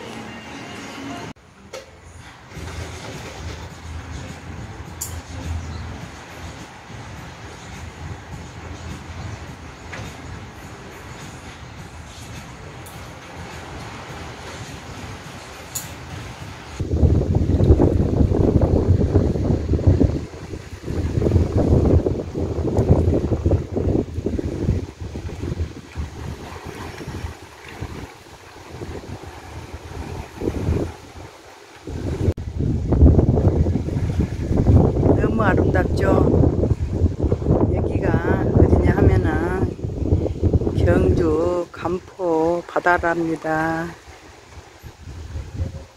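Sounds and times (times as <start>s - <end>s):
wind buffeting microphone: 16.3s - 45.9s.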